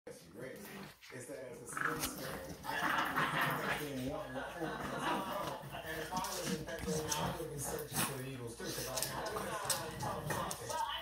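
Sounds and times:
dogs playing tug-of-war: 0:00.1 - 0:11.0
television voice talking: 0:00.1 - 0:11.0.

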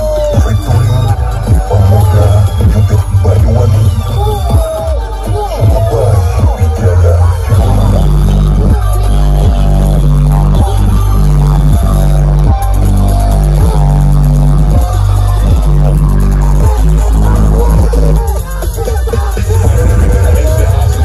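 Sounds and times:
electronic dance music with heavy bass: 0:00.0 - 0:21.0.

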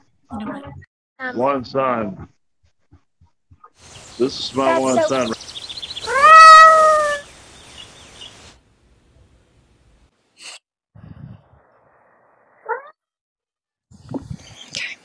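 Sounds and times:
cat meowing: 0:06.1 - 0:07.2.

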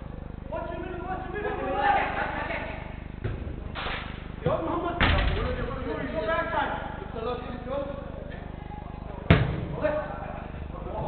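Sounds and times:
football kicked thud: 0:03.2 - 0:03.7, 0:09.3 - 0:09.8.

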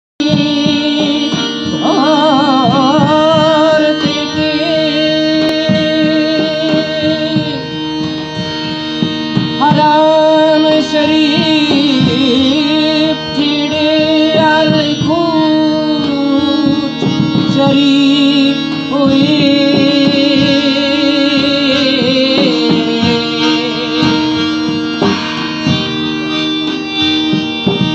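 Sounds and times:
man singing: 0:00.2 - 0:07.7, 0:09.6 - 0:24.4
harmonium drone: 0:00.2 - 0:27.9.

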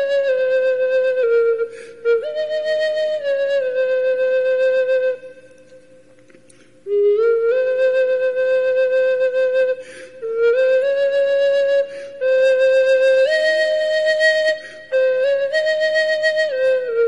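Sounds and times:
flute playing slow tune: 0:00.0 - 0:17.0.

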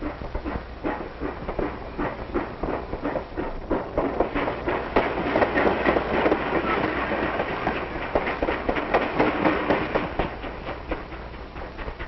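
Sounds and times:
train rumble: 0:00.0 - 0:12.0
train wheels clattering: 0:00.0 - 0:12.0.

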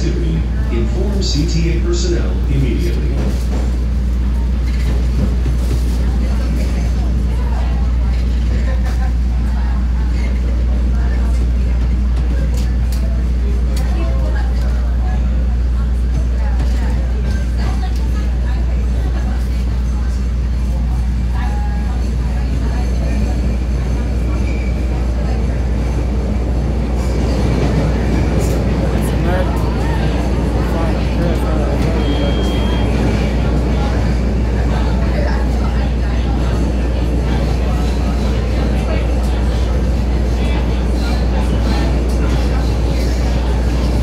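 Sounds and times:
subway train rumbling in tunnel: 0:00.0 - 0:44.0.

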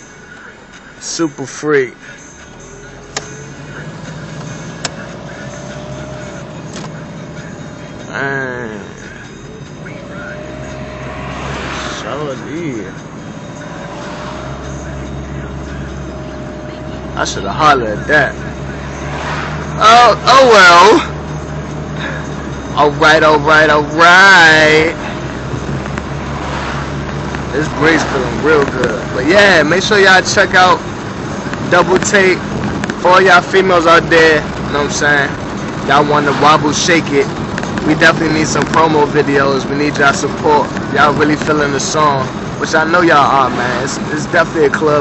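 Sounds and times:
car road and engine noise: 0:00.0 - 0:45.0.

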